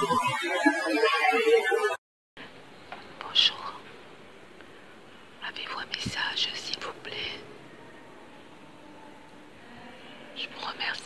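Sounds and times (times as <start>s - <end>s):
low steady hiss: 2.4s - 11.0s
woman whispering: 3.2s - 3.9s, 5.4s - 7.6s, 8.3s - 11.0s.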